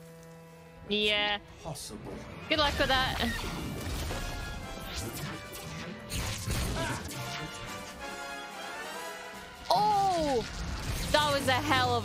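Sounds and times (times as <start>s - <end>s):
orchestral score: 0.0s - 10.5s.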